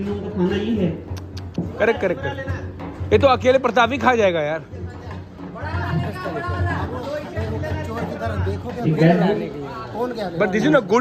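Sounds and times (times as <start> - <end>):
background music: 0.0 - 11.0
people chattering: 0.0 - 11.0.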